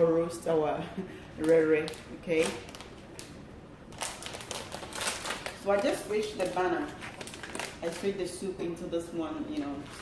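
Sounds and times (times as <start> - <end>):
plastic packet crinkling: 1.4 - 8.4.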